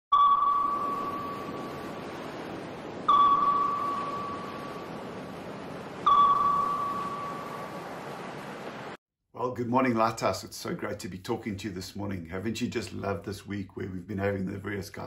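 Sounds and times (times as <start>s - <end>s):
electronic ringing pings: 0.1s - 1.9s, 3.0s - 5.0s, 6.0s - 7.8s.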